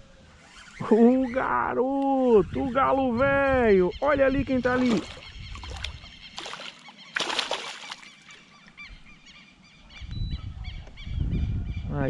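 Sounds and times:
faint bird chirps: 3.7s - 12.0s
fish thrashing and splashing water: 4.7s - 8.4s.

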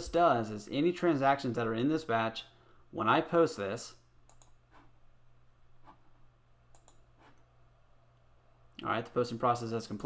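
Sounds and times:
low steady hum: 0.0s - 10.0s
computer mouse clicks: 4.2s - 4.9s, 6.7s - 7.5s.

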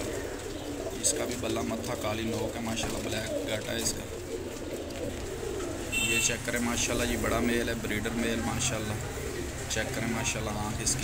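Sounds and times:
pigeons cooing: 0.0s - 11.0s.

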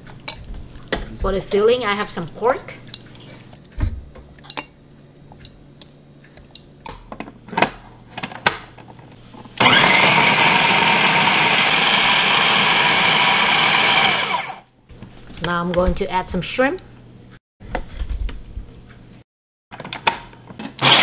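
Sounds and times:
food processor whining: 9.6s - 14.7s, 20.7s - 21.0s.

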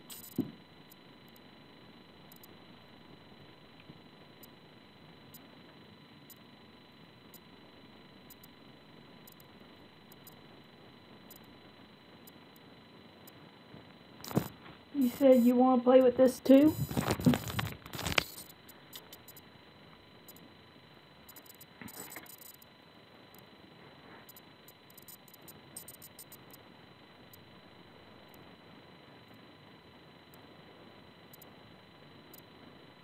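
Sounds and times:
toy rustling and crackling: 16.2s - 19.1s.

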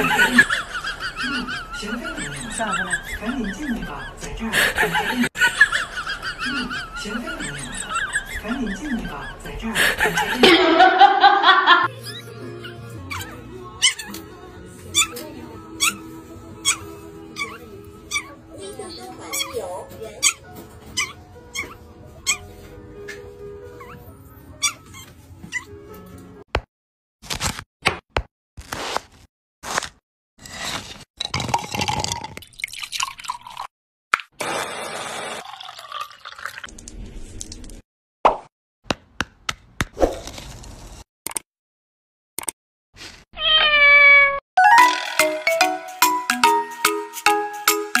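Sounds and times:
background music: 11.9s - 26.4s, 44.6s - 48.0s
puppy yipping: 12.0s - 14.2s, 14.9s - 18.4s, 19.3s - 25.8s
food chopper churning: 34.4s - 35.6s.

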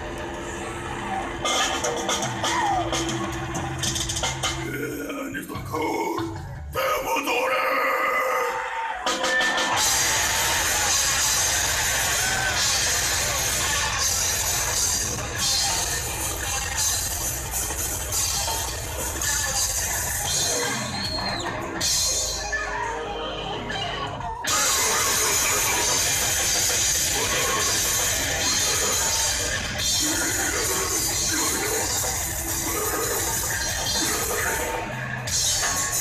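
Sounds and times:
death metal band playing live: 8.4s - 22.5s, 24.4s - 36.0s.

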